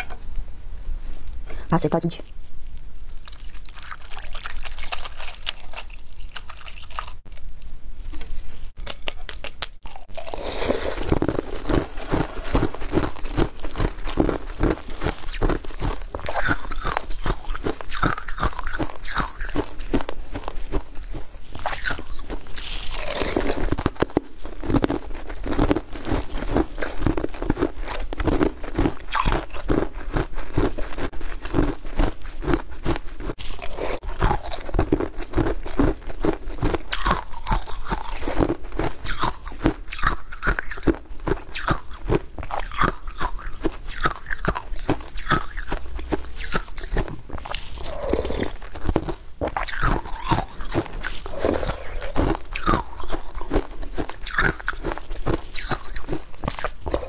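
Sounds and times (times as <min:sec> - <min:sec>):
crisp crunching and chewing: 0:02.8 - 0:08.0, 0:09.8 - 0:57.0.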